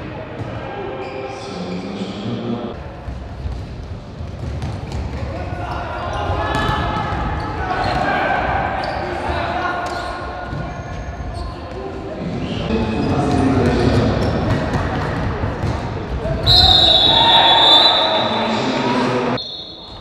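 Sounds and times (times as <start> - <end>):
referee's whistle: 16.4 - 18.6, 19.4 - 20.0
players shouting: 16.4 - 19.4.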